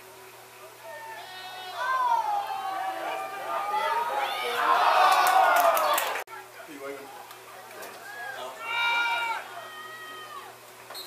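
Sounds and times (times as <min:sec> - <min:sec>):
spectators shouting and cheering: 0:00.6 - 0:10.7
long drawn-out yell: 0:00.7 - 0:06.2, 0:07.9 - 0:10.6.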